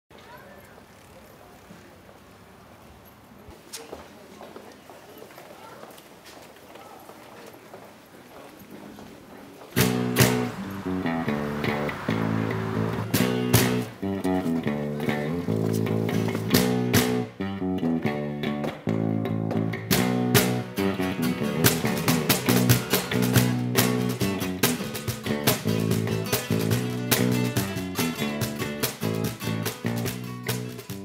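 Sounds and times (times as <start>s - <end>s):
faint street background: 0.1s - 31.0s
strummed acoustic guitar: 9.8s - 17.4s, 19.5s - 31.0s.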